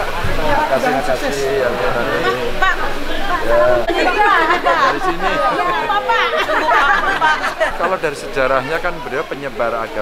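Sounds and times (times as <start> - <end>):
people chatting: 0.0 - 10.0.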